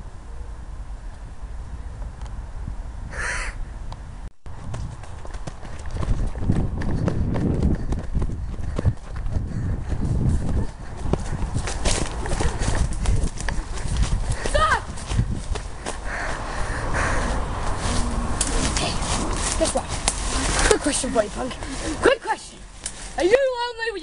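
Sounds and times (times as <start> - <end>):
handheld camera rumble: 3.9 - 23.4
running footsteps on woodland ground: 4.5 - 23.5.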